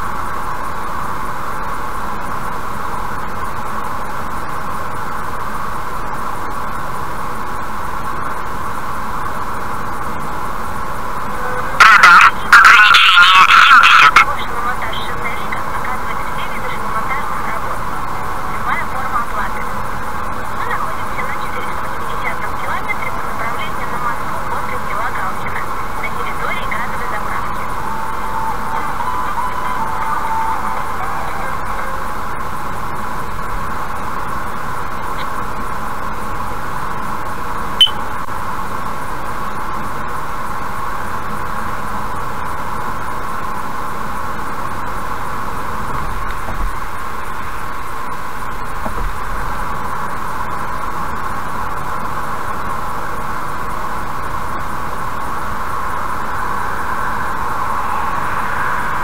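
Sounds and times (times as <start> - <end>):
car road and engine noise: 0.0 - 59.0.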